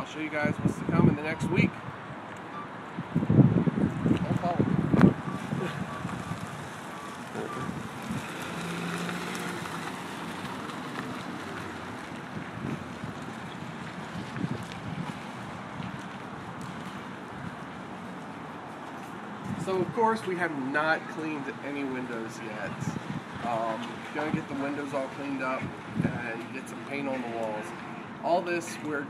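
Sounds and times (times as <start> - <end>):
wind buffeting microphone: 0.0 - 18.7, 19.4 - 20.2, 22.6 - 26.4
road traffic noise: 0.0 - 29.0.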